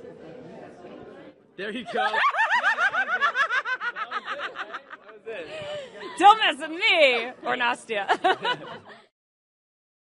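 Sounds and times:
group laughter: 1.8 - 6.3, 8.0 - 9.1.

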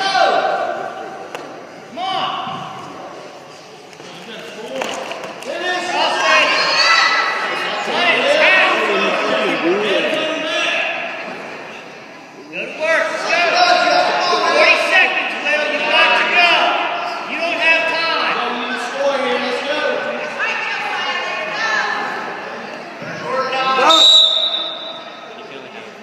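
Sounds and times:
people shouting in a gym: 0.0 - 1.2, 5.8 - 11.2, 13.0 - 25.2.

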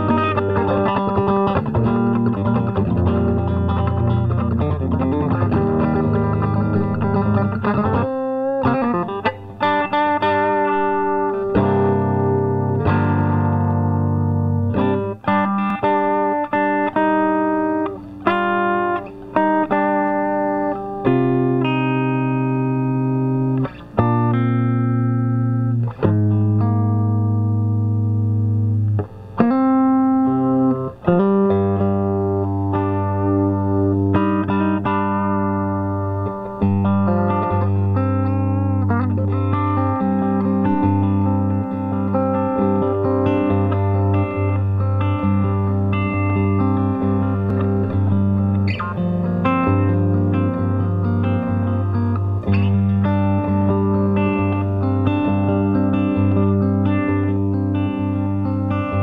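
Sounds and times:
electric guitar riff: 0.0 - 59.0.

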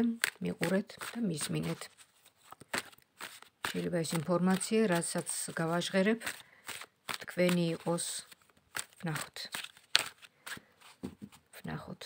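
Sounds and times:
cards snapping: 0.0 - 11.0.

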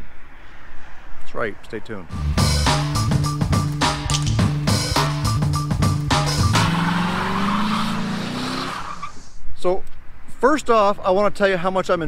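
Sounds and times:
music with steady beat: 2.1 - 6.8
car engine revving high: 4.5 - 9.2
tyres squealing: 6.3 - 9.4.

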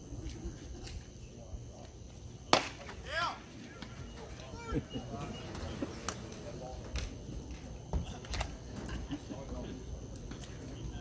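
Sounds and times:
low background chatter: 3.4 - 11.0.

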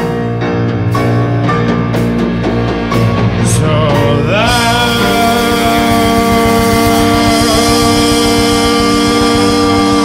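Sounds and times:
bass and drum rhythm: 0.0 - 10.0
long held note: 3.2 - 10.0.

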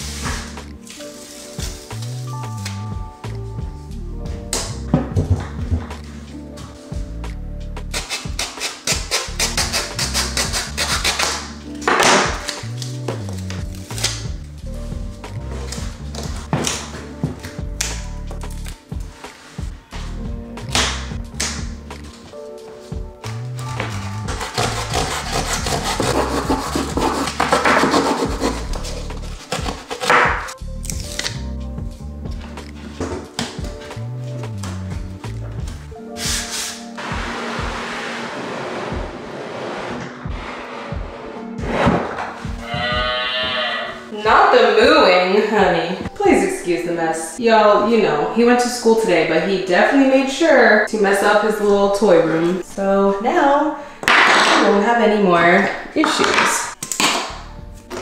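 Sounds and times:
background music with bass line: 0.0 - 38.2, 57.1 - 58.0
hacksaw rasping: 7.9 - 11.4, 23.9 - 30.4.

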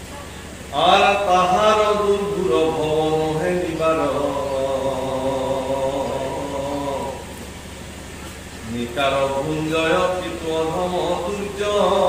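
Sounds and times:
man chanting: 0.7 - 7.4, 8.6 - 12.0.

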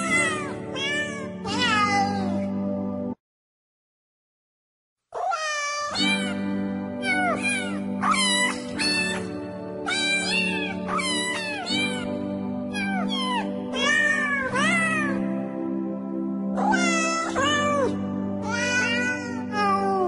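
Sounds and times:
cats meowing: 0.0 - 2.4, 5.2 - 6.4, 7.0 - 9.3, 9.9 - 12.1, 12.7 - 15.2, 16.6 - 20.0
background music with held chords: 0.0 - 3.2, 6.0 - 20.0.

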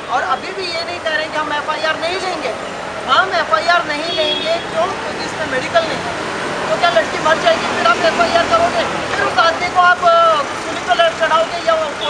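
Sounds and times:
woman speaking animatedly: 0.0 - 6.1
street noise hum: 0.0 - 12.0.

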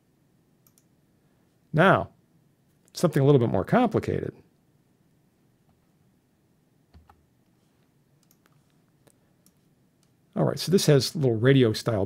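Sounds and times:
faint computer clicks: 0.6 - 0.9, 8.2 - 10.2.

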